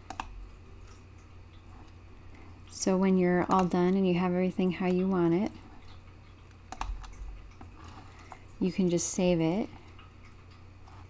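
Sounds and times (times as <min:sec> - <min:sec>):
computer mouse clicks: 0:00.0 - 0:00.3, 0:06.7 - 0:08.4.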